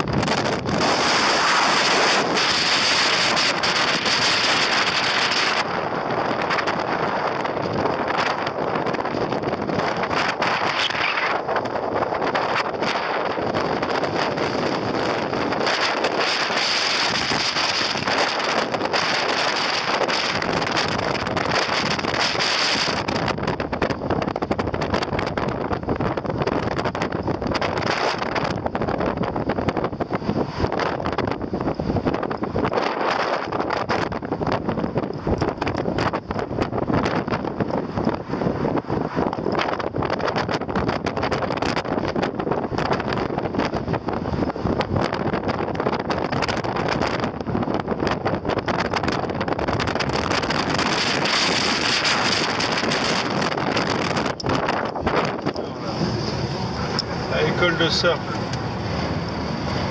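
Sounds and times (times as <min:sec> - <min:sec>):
car engine and road noise: 0:00.0 - 0:59.9
wind buffeting microphone: 0:00.0 - 0:59.9.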